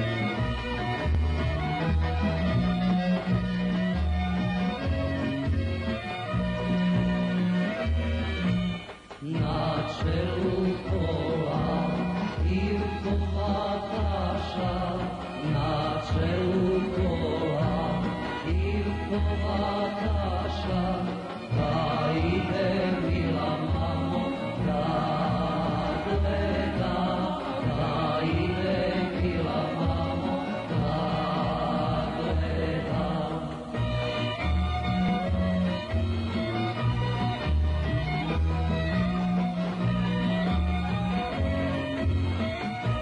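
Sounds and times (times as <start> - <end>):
instrumental accompaniment with bass: 0.0 - 43.0
man singing folk song: 9.2 - 34.3.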